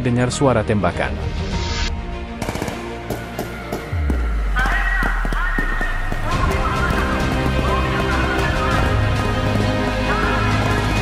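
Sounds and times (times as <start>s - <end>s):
background music: 0.0s - 11.0s
gunshots: 2.4s - 7.0s.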